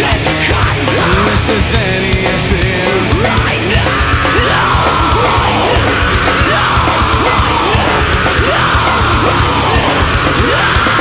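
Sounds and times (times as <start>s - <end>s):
distorted electric guitars: 0.0s - 11.0s
drums: 0.0s - 11.0s
person yelling vocals: 0.9s - 1.9s.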